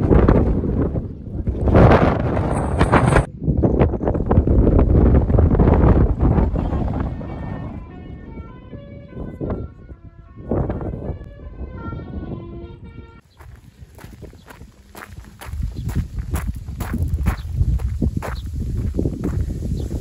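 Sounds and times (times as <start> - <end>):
wind rumble on microphone: 0.0 - 20.0
footsteps on gravel: 13.2 - 20.0.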